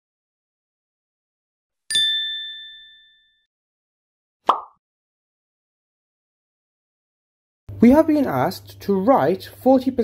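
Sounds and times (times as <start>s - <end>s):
bell-like ding: 1.9s - 3.5s.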